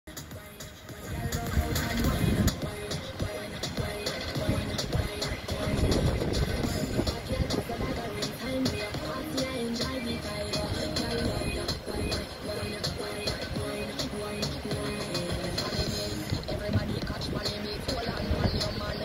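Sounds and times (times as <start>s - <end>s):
background music with steady beat: 0.1s - 19.0s.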